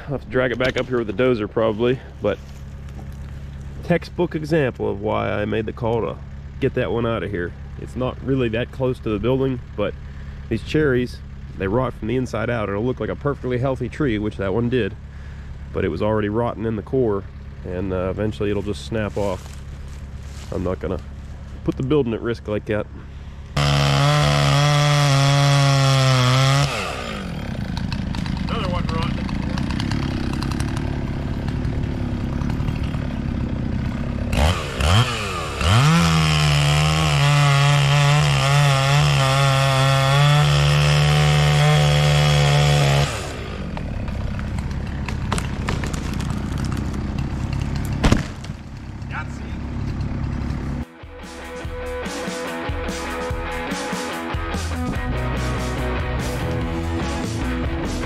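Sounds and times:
chainsaw engine revving: 0:22.7 - 0:58.0
sharp thump: 0:48.0 - 0:48.6
music: 0:50.8 - 0:58.0.

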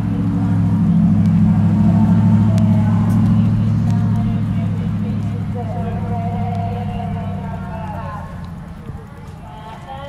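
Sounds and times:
faint voices: 0:00.0 - 0:10.0
loud low engine hum: 0:00.0 - 0:10.0.

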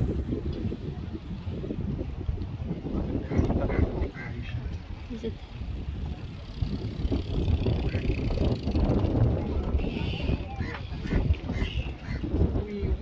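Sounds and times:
faint voices: 0:00.0 - 0:13.0
wind buffeting microphone: 0:00.0 - 0:13.0.

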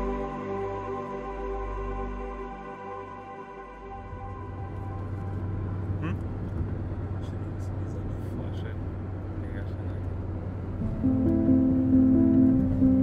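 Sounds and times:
car driving cabin drone: 0:03.8 - 0:13.0.

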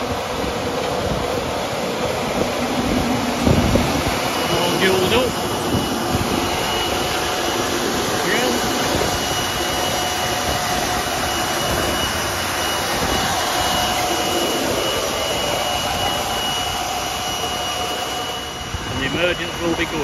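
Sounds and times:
high fan whine: 0:00.0 - 0:20.0
tractor engine running: 0:00.0 - 0:20.0.

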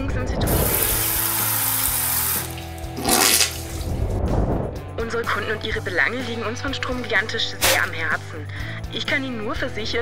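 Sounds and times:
background music: 0:00.0 - 0:10.0
shower head spraying water: 0:00.5 - 0:03.8.

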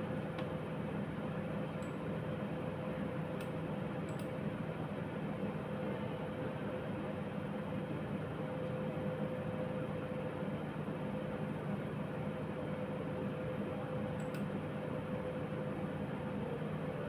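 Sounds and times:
fan hum and hiss: 0:00.0 - 0:17.0.

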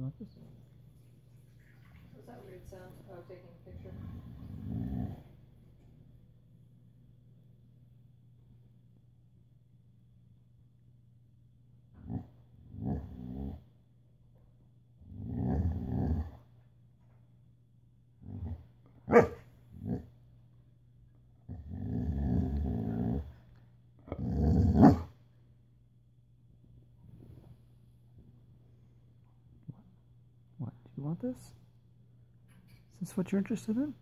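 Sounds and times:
dog growling and grumbling: 0:03.6 - 0:05.5, 0:11.9 - 0:13.8, 0:15.0 - 0:16.6, 0:18.2 - 0:20.2, 0:21.4 - 0:25.2
dog sharp bark: 0:19.1 - 0:19.4.

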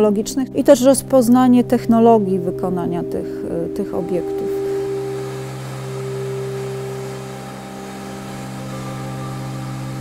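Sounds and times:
ambient drone music: 0:00.2 - 0:10.0.

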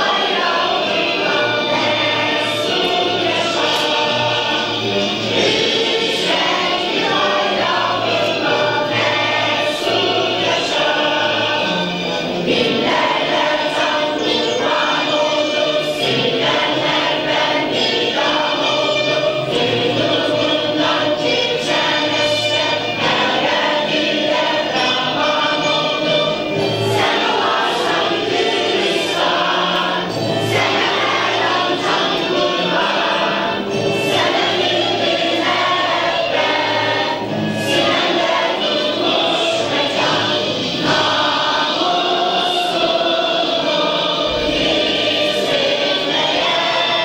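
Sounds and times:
choir singing: 0:00.0 - 0:47.0
instrumental accompaniment: 0:00.0 - 0:47.0.

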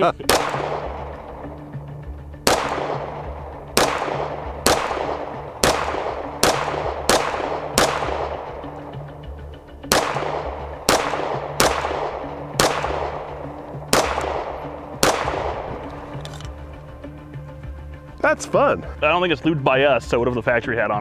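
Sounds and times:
pistol shots: 0:00.2 - 0:16.6.

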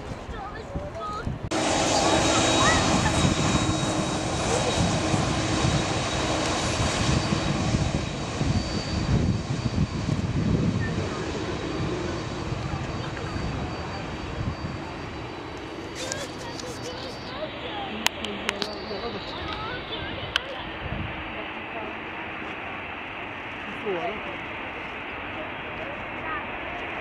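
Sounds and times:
jet engines whining: 0:00.0 - 0:27.0.

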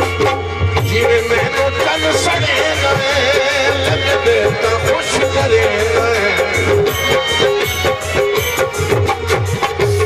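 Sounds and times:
man singing with vibrato: 0:00.0 - 0:09.6.

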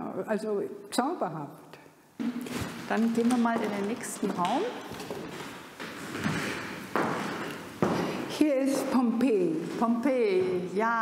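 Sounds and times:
footsteps on wooden floor: 0:02.2 - 0:08.4, 0:09.3 - 0:10.8.

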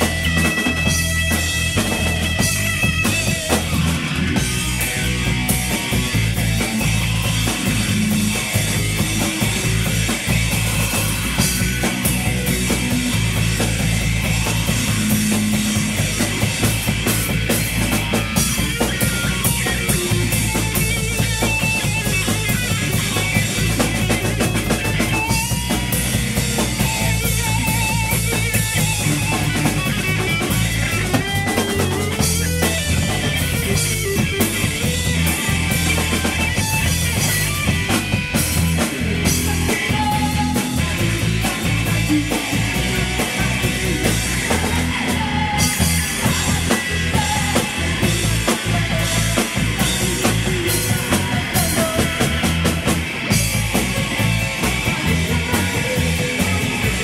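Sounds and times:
drum kit: 0:00.0 - 0:57.0
electric bass: 0:00.0 - 0:57.0
electric guitar: 0:00.0 - 0:57.0.

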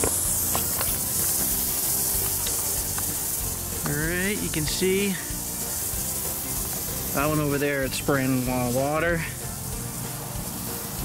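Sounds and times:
sprinkler heads hissing: 0:00.0 - 0:11.0.

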